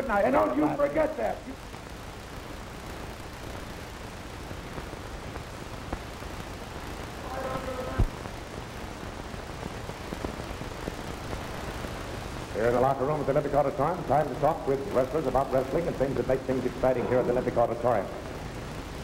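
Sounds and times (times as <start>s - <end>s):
videotape hiss and hum: 0.0s - 19.0s.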